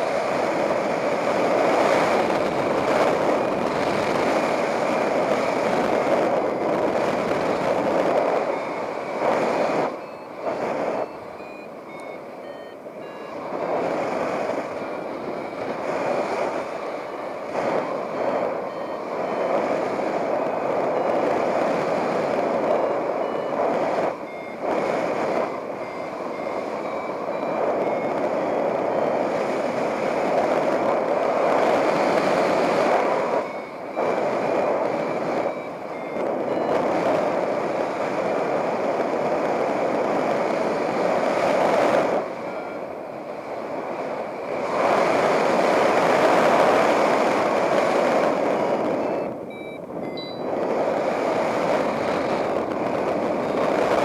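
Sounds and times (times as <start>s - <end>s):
variometer beeps rising in pitch: 0.0s - 54.0s
wind rushing over microphone: 0.0s - 54.0s.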